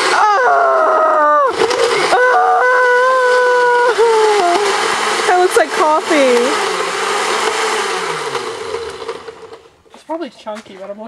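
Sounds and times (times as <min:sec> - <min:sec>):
blender running: 0:00.0 - 0:09.8.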